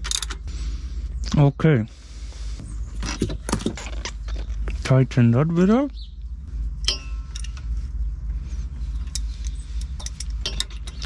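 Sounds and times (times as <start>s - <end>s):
low steady rumble: 0.0s - 11.0s.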